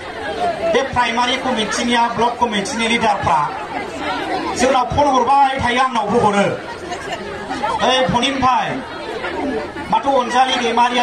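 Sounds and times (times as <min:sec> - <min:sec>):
man speaking into microphones: 0:00.7 - 0:03.6, 0:04.6 - 0:06.6, 0:07.8 - 0:08.8, 0:09.9 - 0:11.0.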